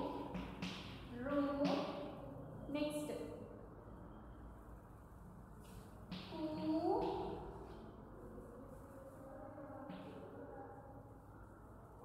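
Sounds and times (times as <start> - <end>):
chalk tapping on blackboard: 0.1 - 2.0, 6.0 - 7.5
woman speaking: 1.1 - 1.9, 2.7 - 3.4, 6.3 - 7.3.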